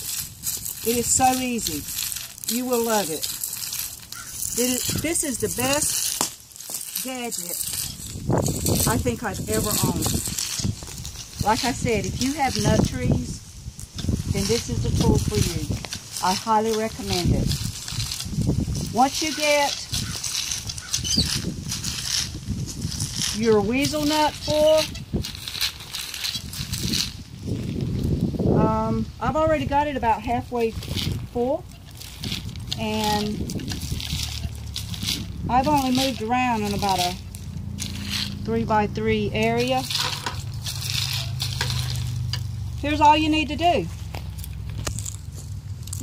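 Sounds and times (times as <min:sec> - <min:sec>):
nut gatherer rolling over leaves: 0:00.0 - 0:46.0.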